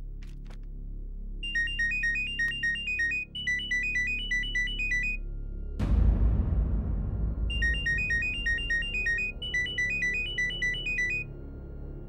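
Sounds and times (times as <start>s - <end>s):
low background film music: 0.0s - 12.0s
phone ringtone beeps: 1.4s - 5.2s, 7.5s - 11.3s.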